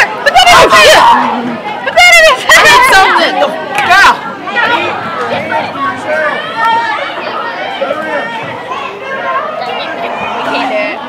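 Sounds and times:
young people chattering: 0:00.0 - 0:11.0.

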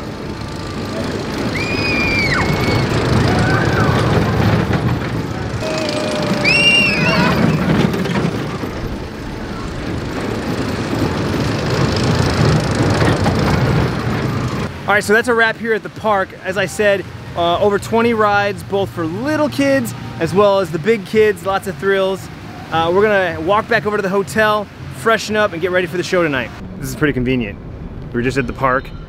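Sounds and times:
roller coaster rolling on track: 0:00.0 - 0:29.0
riders screaming: 0:00.9 - 0:04.6, 0:05.5 - 0:08.8.

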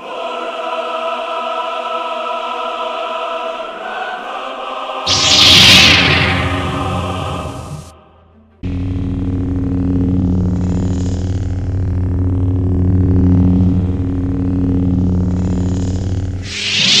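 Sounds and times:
lightsaber electric hum: 0:05.1 - 0:07.9, 0:08.6 - 0:17.0
loud hissing burst: 0:05.1 - 0:07.9, 0:16.4 - 0:17.0.

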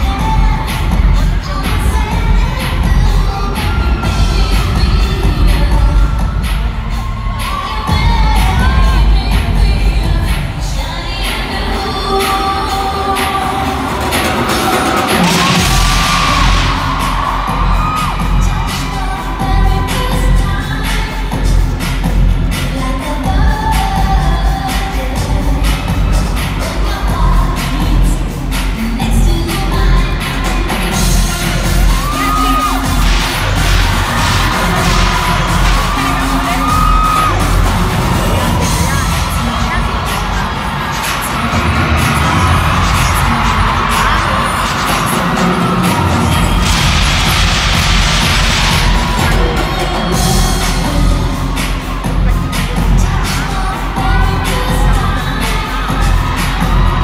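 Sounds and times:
live pop music with singing: 0:00.0 - 0:57.0.

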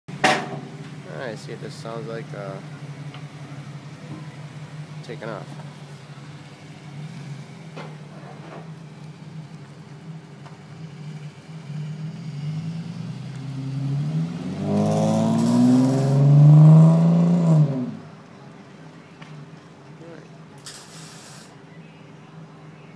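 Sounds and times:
car exhaust accelerating: 0:01.3 - 0:18.2.

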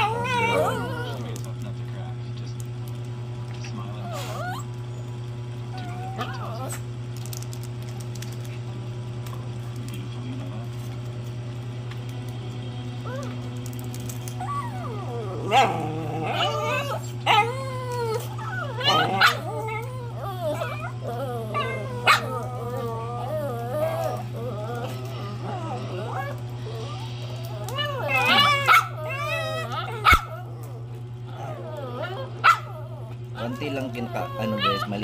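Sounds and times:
dog yipping: 0:00.0 - 0:01.4, 0:14.4 - 0:30.7, 0:31.3 - 0:35.0
dog whining: 0:00.0 - 0:01.6, 0:03.6 - 0:06.9, 0:13.0 - 0:35.0
steady low hum: 0:00.0 - 0:35.0.

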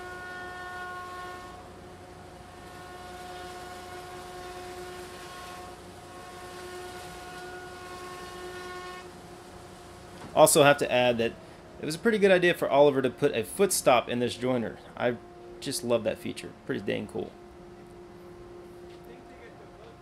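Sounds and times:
jointer whining: 0:00.0 - 0:09.2.

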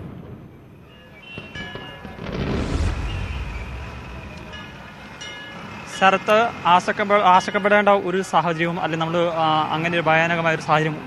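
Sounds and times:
deep rumble of a blast: 0:02.1 - 0:06.0.

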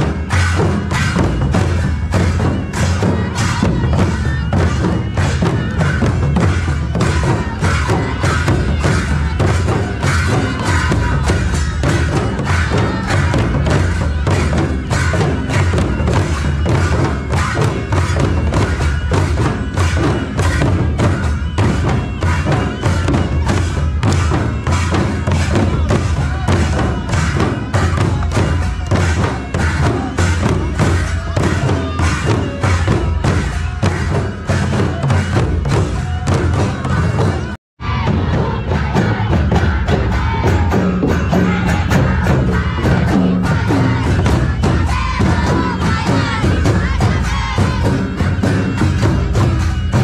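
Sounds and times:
barrel drums beaten in rhythm: 0:00.0 - 0:50.0.

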